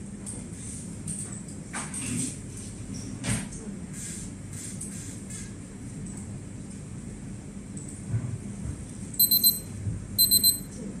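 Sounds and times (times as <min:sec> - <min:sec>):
timer alarm beeping: 0:09.2 - 0:10.7.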